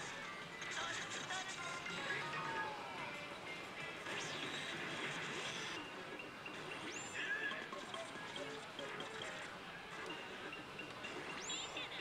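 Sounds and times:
din of gaming hall: 0.0 - 12.0
electronic game tones and music: 3.7 - 12.0.

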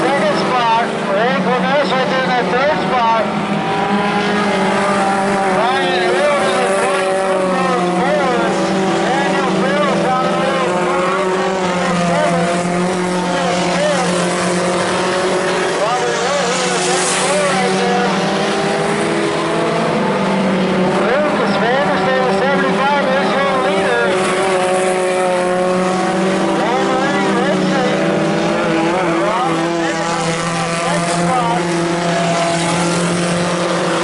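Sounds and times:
race car engines running: 0.0 - 34.0.

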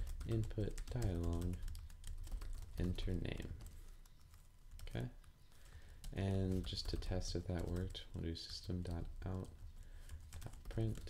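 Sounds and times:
computer keyboard keystrokes: 0.0 - 8.6.

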